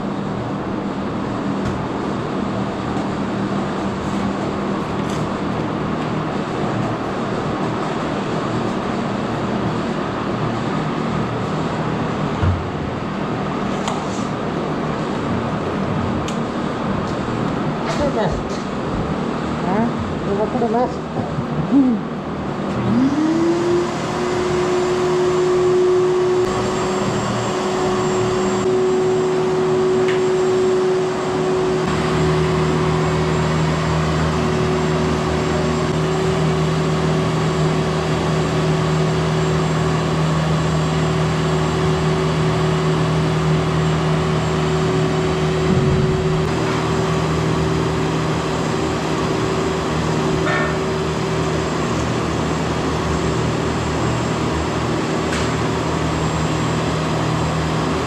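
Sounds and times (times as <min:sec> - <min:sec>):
shop vacuum motor running: 0:00.0 - 0:58.0.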